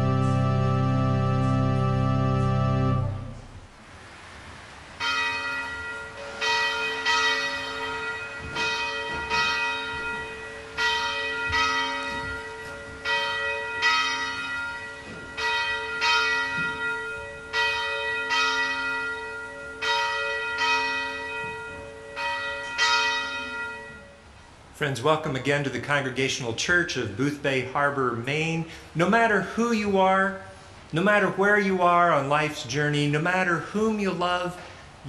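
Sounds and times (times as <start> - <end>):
church bell ringing: 0.0 - 3.7, 5.0 - 24.6.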